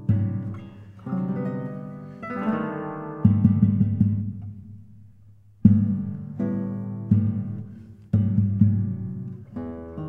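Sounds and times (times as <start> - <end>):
classical guitar plucked chords: 0.0 - 10.0.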